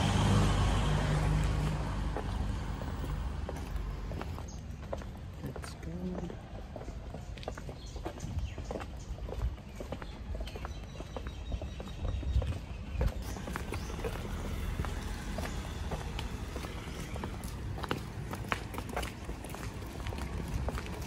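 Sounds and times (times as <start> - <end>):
footsteps on pavement: 0.0 - 21.0.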